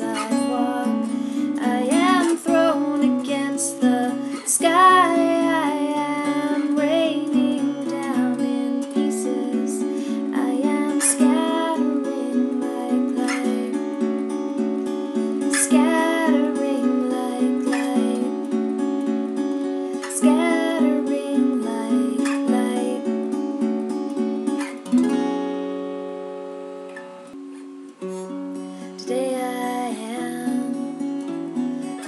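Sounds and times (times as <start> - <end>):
woman singing: 0.0 - 14.1, 15.4 - 18.6, 20.0 - 23.2, 28.8 - 31.1
acoustic guitar chords: 0.0 - 32.0.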